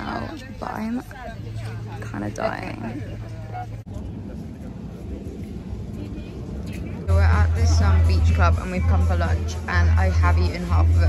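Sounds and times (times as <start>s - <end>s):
faint indistinct voices: 0.0s - 11.0s
wind on microphone rumble: 0.0s - 11.0s.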